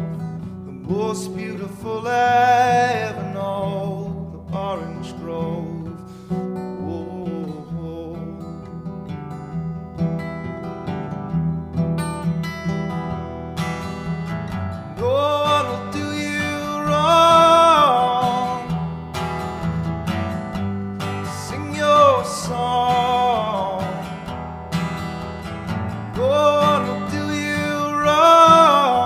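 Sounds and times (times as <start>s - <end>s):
acoustic guitar playing: 0.0s - 29.0s
person singing wordless notes: 15.0s - 18.9s, 21.3s - 24.1s, 26.2s - 29.0s.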